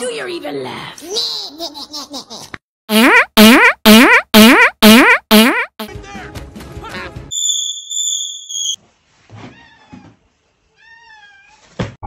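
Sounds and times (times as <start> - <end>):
high electronic beep: 2.9 - 5.8
faint meow-like calls: 10.8 - 11.7.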